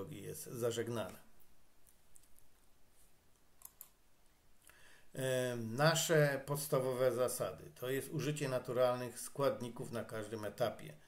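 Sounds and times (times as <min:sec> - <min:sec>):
faint sharp clicks: 0:03.3 - 0:04.8.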